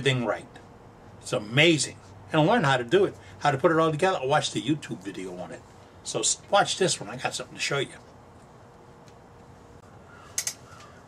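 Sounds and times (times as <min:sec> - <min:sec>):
faint bird calls: 0:09.8 - 0:11.0
sharp clicks: 0:10.4 - 0:10.9.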